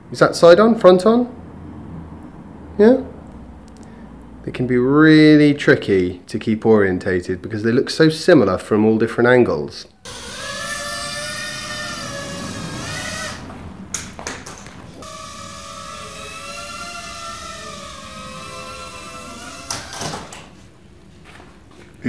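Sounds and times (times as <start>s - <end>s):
small drone motors whining: 10.0s - 14.2s, 14.9s - 20.4s.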